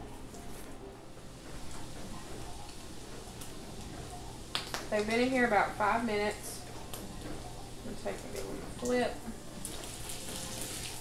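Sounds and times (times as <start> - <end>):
butter sizzling in a frying pan: 1.3 - 11.0
woman speaking: 4.9 - 6.7, 8.8 - 9.3.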